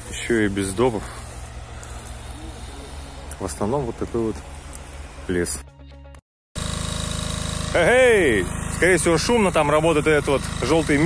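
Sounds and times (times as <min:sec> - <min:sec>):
steady low hum: 0:00.0 - 0:05.3, 0:06.6 - 0:11.0
faint outdoor background noise: 0:00.0 - 0:05.5.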